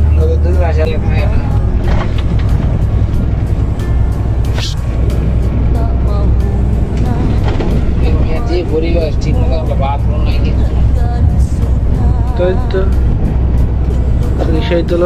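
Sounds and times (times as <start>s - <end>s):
large vehicle engine drone: 0.0s - 15.0s
music: 0.0s - 15.0s
road noise: 0.0s - 15.0s.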